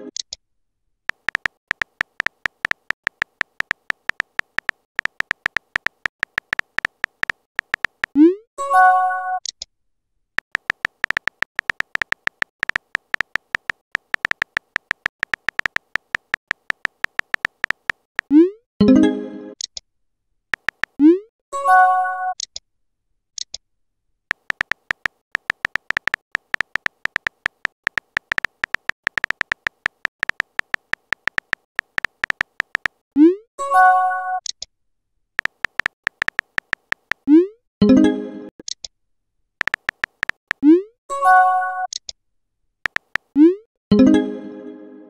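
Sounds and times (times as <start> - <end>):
phone keyboard tap clicks: 1.1 - 8.2, 10.4 - 18.3, 20.6 - 21.0, 24.3 - 33.0, 35.4 - 37.2, 39.6 - 40.6, 42.9 - 43.3.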